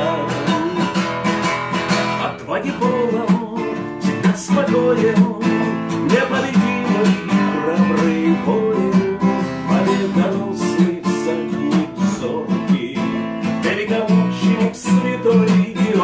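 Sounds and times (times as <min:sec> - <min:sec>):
acoustic guitar strumming: 0:00.0 - 0:16.0
man singing: 0:00.0 - 0:16.0.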